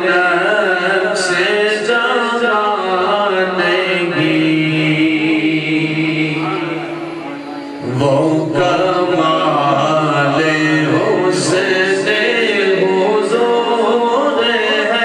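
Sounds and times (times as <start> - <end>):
man chanting melodically: 0.0 - 15.0.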